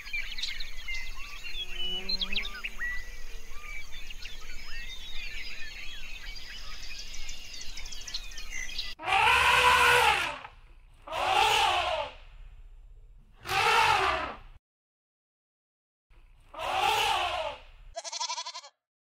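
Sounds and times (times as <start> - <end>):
small birds chirping: 0.0 - 9.0
loud rising falling bird calls: 0.0 - 12.6, 13.4 - 14.6, 16.4 - 18.6.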